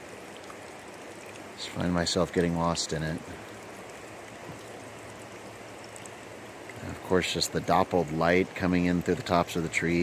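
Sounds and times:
river water flowing: 0.0s - 10.0s.

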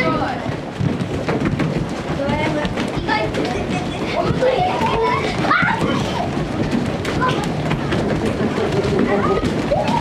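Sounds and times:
bare feet on wooden floor: 0.0s - 10.0s
children chattering: 0.0s - 10.0s.

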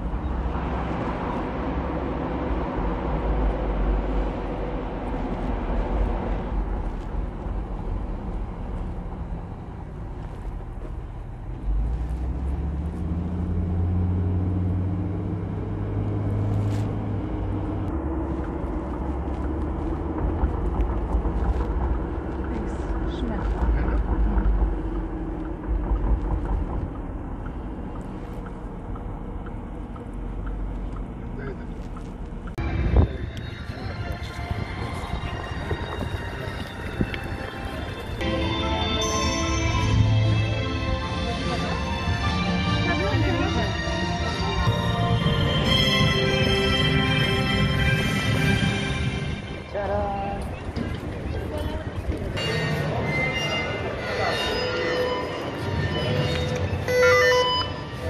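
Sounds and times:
road rumble inside moving car: 0.0s - 38.2s, 39.8s - 58.0s
wind on microphone: 32.6s - 38.2s
background music: 32.6s - 50.6s
indistinct voices: 49.5s - 58.0s.

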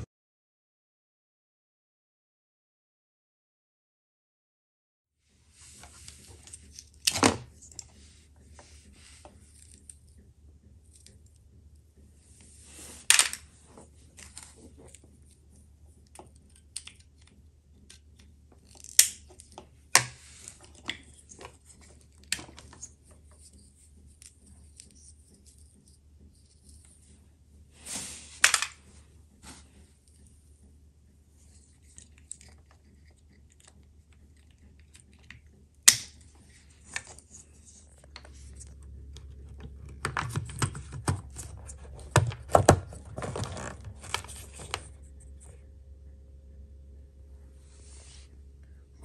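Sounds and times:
faint low hum: 5.3s - 49.0s.

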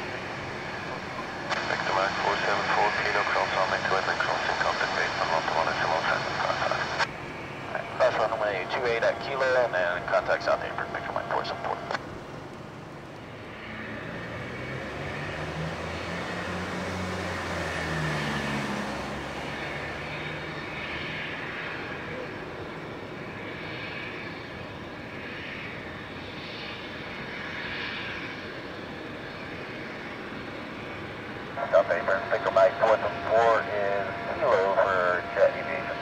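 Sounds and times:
jet engines whining: 0.0s - 36.0s.

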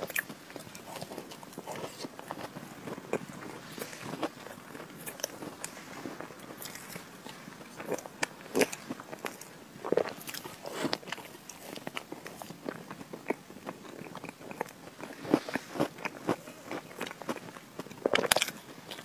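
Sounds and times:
biting and chewing: 0.0s - 19.0s.

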